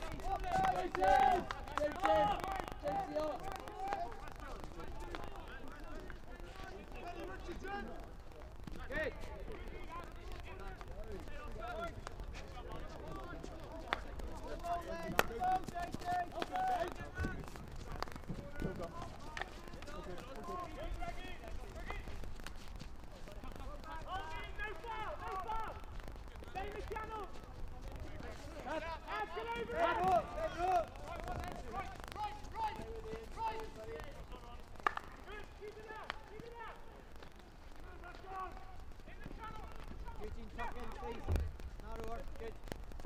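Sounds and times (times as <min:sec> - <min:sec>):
players shouting: 0:00.0 - 0:08.0, 0:08.8 - 0:22.2, 0:23.5 - 0:36.9.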